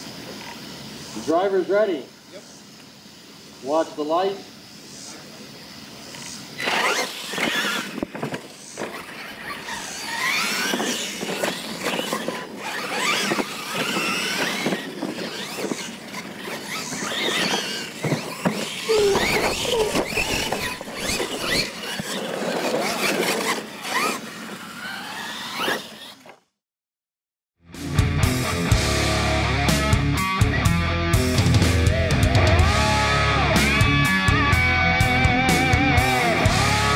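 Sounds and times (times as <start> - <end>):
electric motors whining: 0.0 - 26.5, 31.4 - 36.9
tyres churning dirt: 5.3 - 26.4.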